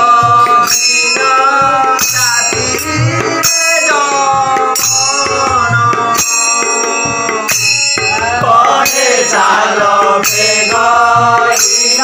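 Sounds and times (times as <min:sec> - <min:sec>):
barrel drum: 0:00.0 - 0:12.0
brass hand cymbals: 0:00.0 - 0:12.0
men singing devotional song: 0:00.0 - 0:12.0.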